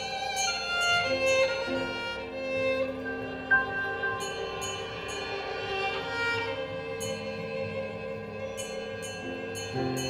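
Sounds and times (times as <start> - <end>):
bowed violin long notes: 0.0 - 10.0.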